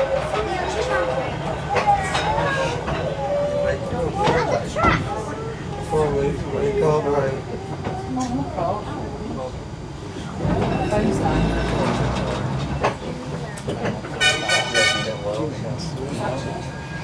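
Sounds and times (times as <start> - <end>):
indistinct passenger chatter: 0.0 - 17.0
tram running: 0.0 - 17.0.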